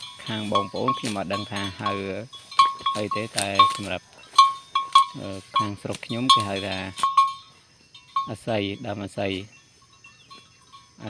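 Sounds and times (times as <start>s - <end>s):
thin high-pitched tones: 0.0s - 11.0s
man speaking: 0.2s - 2.3s, 2.9s - 4.1s, 5.1s - 7.0s, 8.2s - 9.6s.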